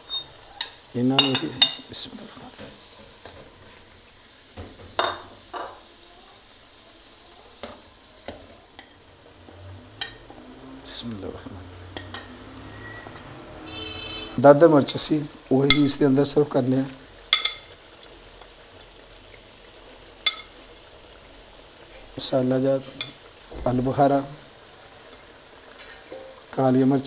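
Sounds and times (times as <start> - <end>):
onion frying in oil: 0.0 - 27.0.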